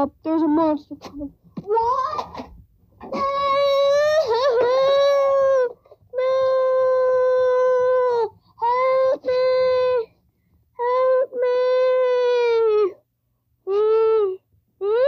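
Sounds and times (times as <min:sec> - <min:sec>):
child crying out: 0:01.7 - 0:02.4, 0:03.1 - 0:10.1.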